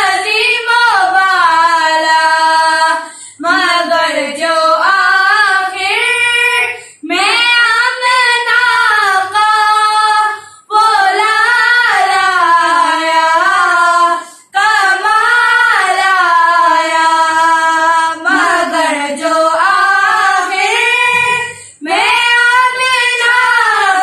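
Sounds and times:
children singing in unison: 0.0 - 24.0.

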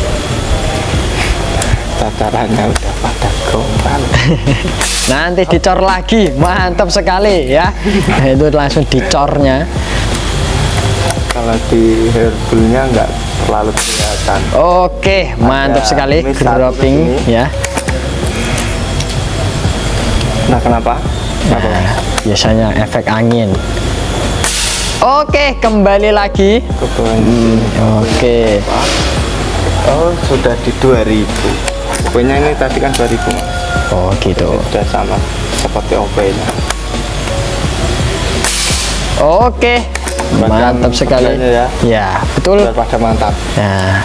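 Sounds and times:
steady rushing noise: 0.0 - 44.0
air rifle shot hiss: 4.8 - 5.3, 13.8 - 14.3, 24.4 - 25.0, 38.4 - 39.1.

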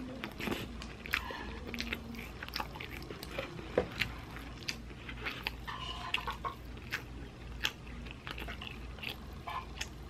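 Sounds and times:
close chewing with mouth clicks: 0.0 - 10.0.

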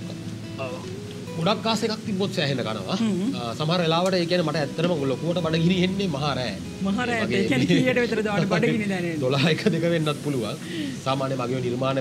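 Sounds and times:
man talking: 0.6 - 12.0
woman talking: 6.8 - 9.2.

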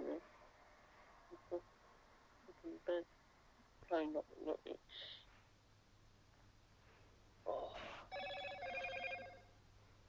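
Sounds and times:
smartphone notification chime: 8.1 - 9.4.

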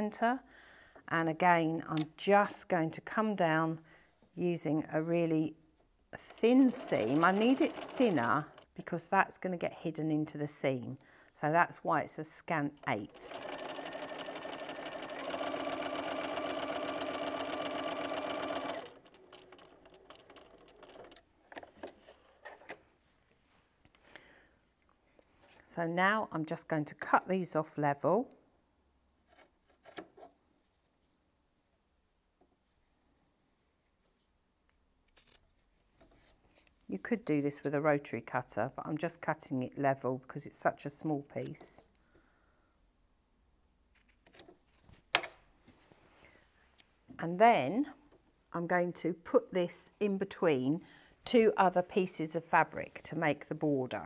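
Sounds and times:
sewing machine stitching: 6.2 - 8.7, 12.9 - 22.0.

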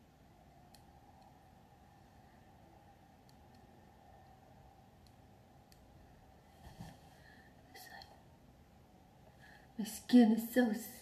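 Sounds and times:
faint whisper: 6.6 - 8.4.

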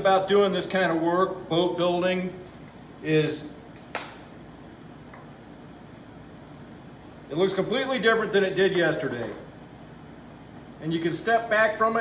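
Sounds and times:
workshop low hum: 0.0 - 12.0.

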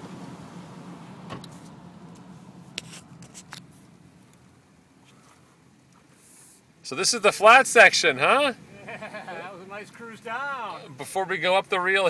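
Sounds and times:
car engine and tyres hum: 0.0 - 12.0.

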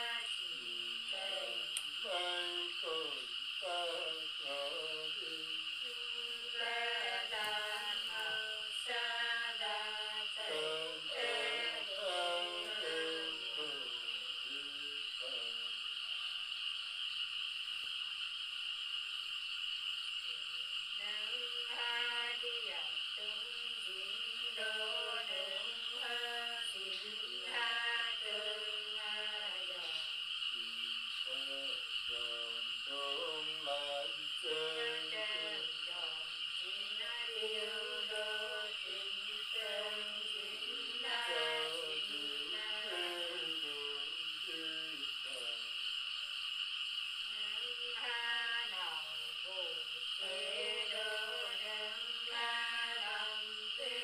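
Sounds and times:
women singing unaccompanied: 0.0 - 14.5, 21.0 - 30.1, 32.2 - 45.6, 47.3 - 54.0.

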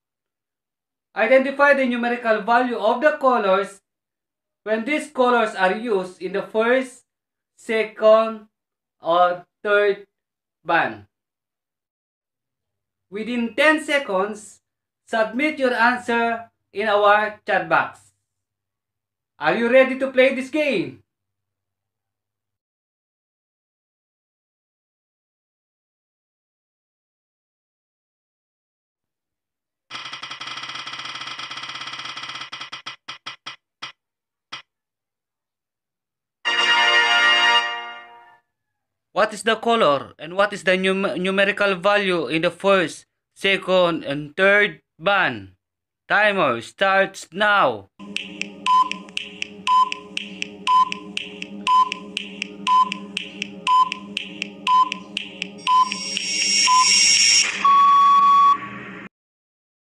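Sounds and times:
spinner wheel ticking clicks: 48.1 - 56.5
long buzzer tone: 55.6 - 58.6.

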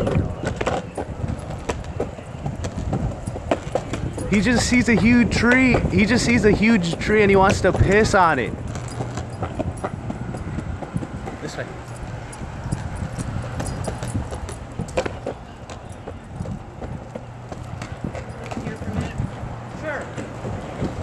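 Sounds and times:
dog's paws tapping: 0.0 - 21.0
footsteps on pavement: 0.0 - 21.0.

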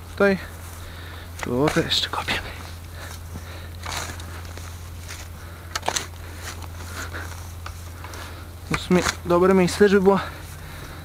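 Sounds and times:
spade digging into soil: 3.8 - 7.8.

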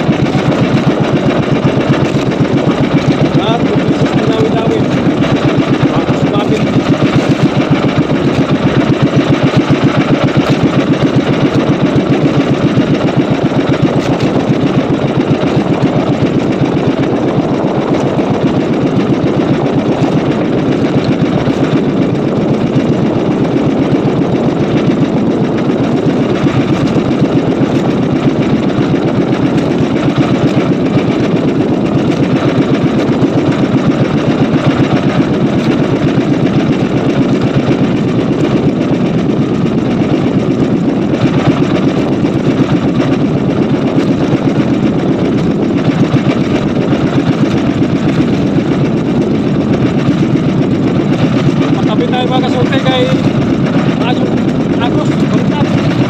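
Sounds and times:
boat engine running steadily: 0.0 - 56.0.

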